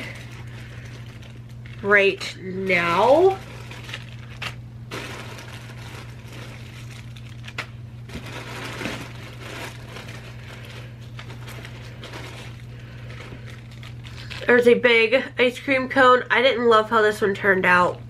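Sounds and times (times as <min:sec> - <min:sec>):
plastic bags crinkling: 0:00.0 - 0:14.8
steady low hum: 0:00.0 - 0:18.0.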